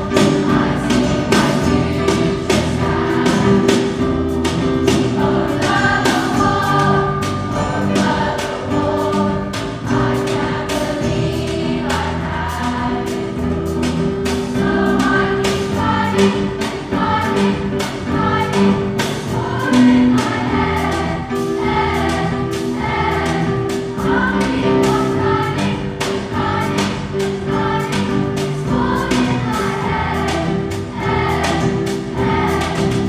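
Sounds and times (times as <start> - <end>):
band with piano and guitars: 0.0 - 33.0
children's choir singing: 0.0 - 33.0.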